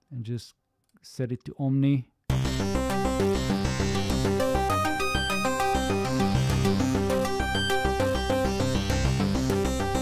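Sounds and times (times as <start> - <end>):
arpeggiated synth notes: 2.3 - 10.0
steady low synth bass: 2.3 - 10.0.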